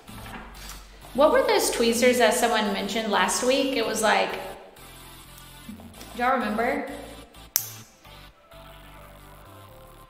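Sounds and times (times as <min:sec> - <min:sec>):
quiet electronic music: 0:00.0 - 0:10.0
sharp click: 0:07.6 - 0:07.9.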